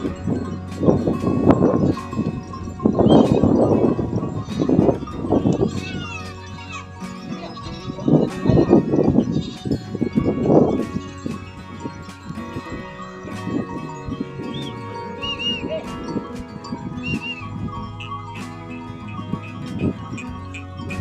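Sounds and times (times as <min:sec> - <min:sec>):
goat bells clinking: 0:00.0 - 0:21.0
goats bleating: 0:00.0 - 0:21.0.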